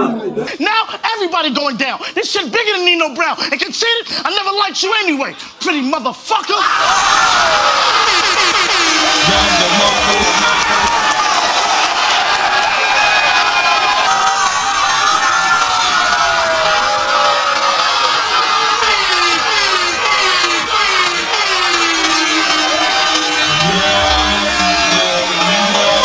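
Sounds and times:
crowd cheering and shouting: 0:06.3 - 0:26.0.

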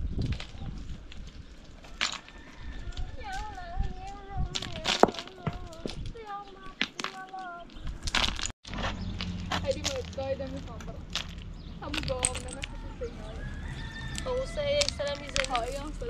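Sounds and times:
stones clacking onto a pile: 0:00.2 - 0:03.4, 0:04.5 - 0:13.0, 0:14.1 - 0:16.0
voices talking: 0:02.9 - 0:08.2, 0:08.9 - 0:16.0.

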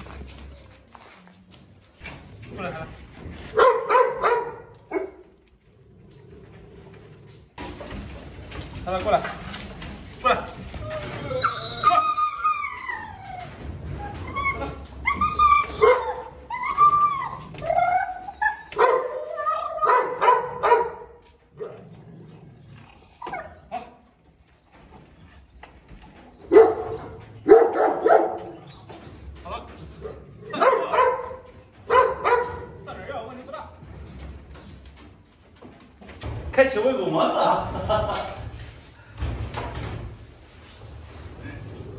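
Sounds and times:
dogs barking: 0:03.5 - 0:05.3, 0:18.6 - 0:21.8, 0:26.4 - 0:28.7, 0:30.1 - 0:32.8
dogs whining and yipping: 0:10.5 - 0:20.4, 0:21.7 - 0:23.8, 0:25.8 - 0:29.1.

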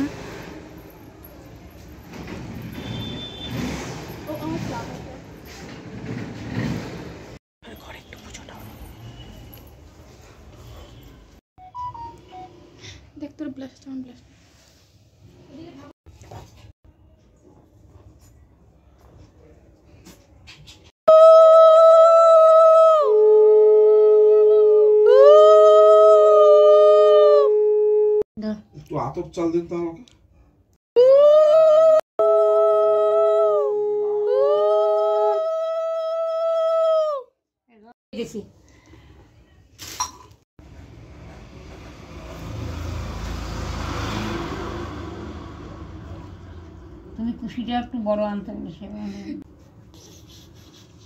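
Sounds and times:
vehicle passing by: 0:00.0 - 0:02.8, 0:03.5 - 0:07.4, 0:40.6 - 0:47.5
people talking: 0:04.3 - 0:05.3, 0:47.2 - 0:49.4.

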